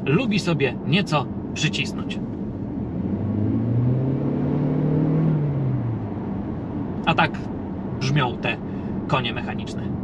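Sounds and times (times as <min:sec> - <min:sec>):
car engine accelerating: 0:02.2 - 0:07.1.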